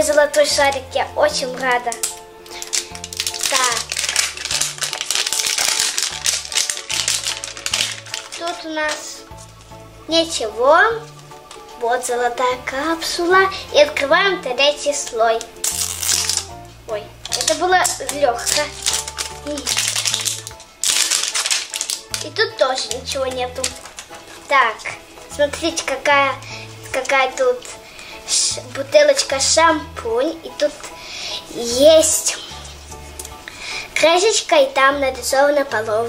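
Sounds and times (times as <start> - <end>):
plastic wrapping crinkling: 0.0 - 27.8
background music with low notes: 0.0 - 36.0.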